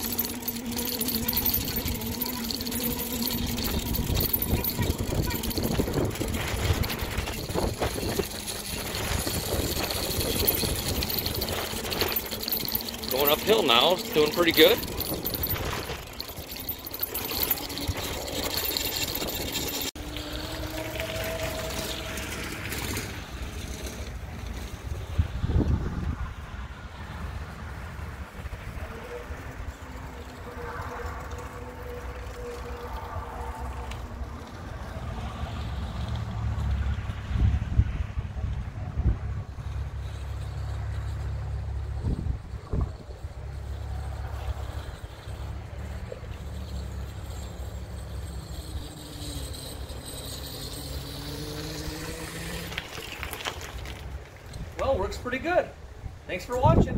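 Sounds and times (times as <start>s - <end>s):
electric motor whine: 0.0s - 23.6s, 46.3s - 53.7s
wind buffeting microphone: 2.9s - 18.2s, 24.8s - 30.2s, 41.8s - 45.4s, 55.9s - 56.9s.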